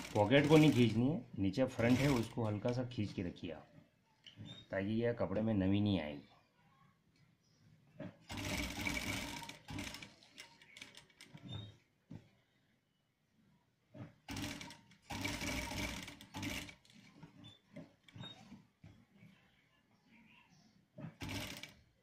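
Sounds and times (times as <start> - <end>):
sewing machine stitching: 0.0 - 1.1, 1.7 - 3.3, 8.2 - 11.7, 14.0 - 18.6, 21.0 - 21.9.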